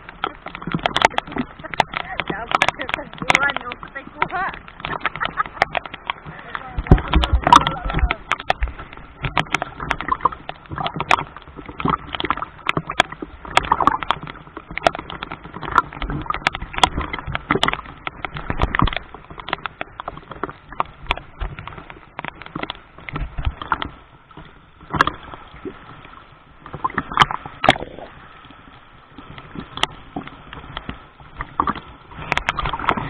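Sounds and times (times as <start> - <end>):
sharp clicks and knocks: 0.0 - 26.0, 29.2 - 33.0
seawater sloshing and splashing: 0.0 - 33.0.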